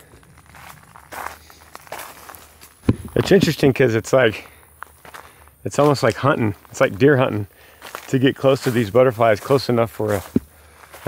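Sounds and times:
footsteps through dry brush: 0.0 - 11.0
leaves rustling against clothing: 0.0 - 11.0.

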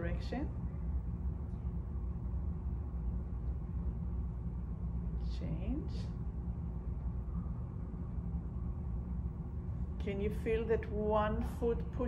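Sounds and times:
low room rumble in a large hall: 0.0 - 12.0.

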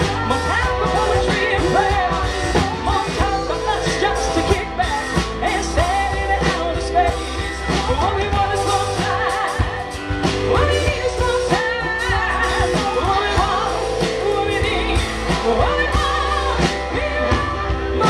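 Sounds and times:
acoustic and electric guitars: 0.0 - 18.0
bass guitar: 0.0 - 18.0
steady drum beat: 0.0 - 18.0
woman singing lead: 0.0 - 18.0.

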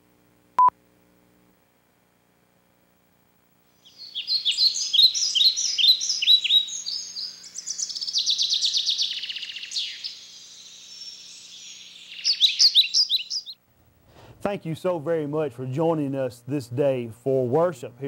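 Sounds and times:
songbirds chirping and singing: 3.8 - 13.6.

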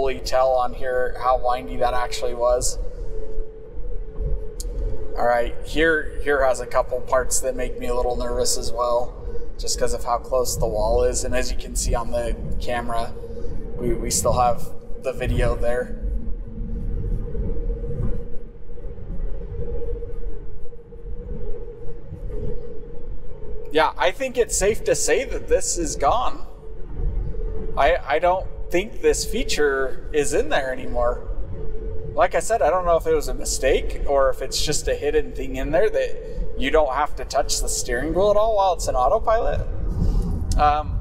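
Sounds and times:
thin hum: 0.0 - 41.0.

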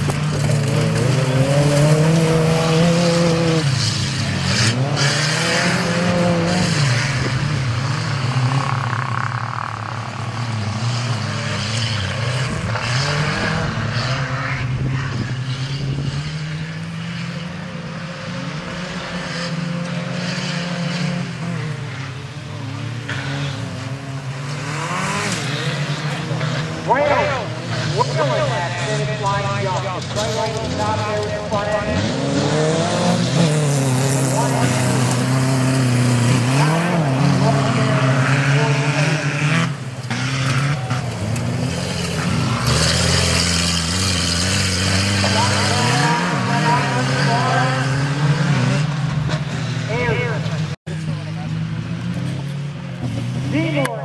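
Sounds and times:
race truck engines revving: 0.0 - 54.0.

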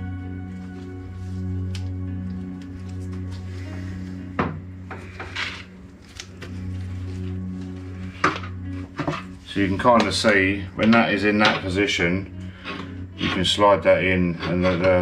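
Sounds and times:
steady held-tone music: 0.0 - 15.0.

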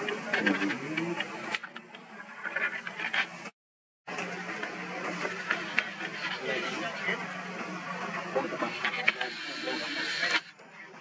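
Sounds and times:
background chatter: 0.0 - 3.5, 4.1 - 11.0.

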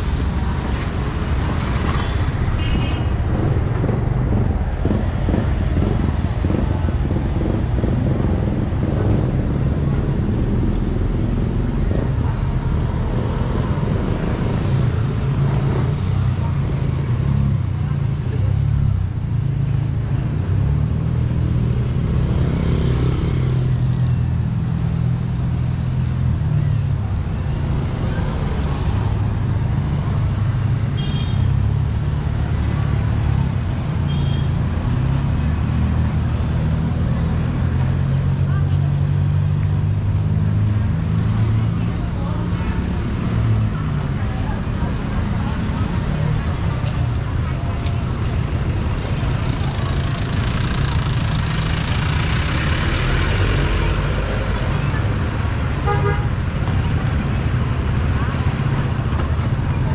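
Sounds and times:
car and motorcycle engines: 0.0 - 59.9.

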